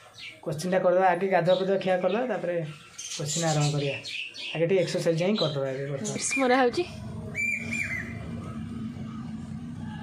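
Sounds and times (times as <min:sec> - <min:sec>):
steady low hum: 0:04.7 - 0:10.0.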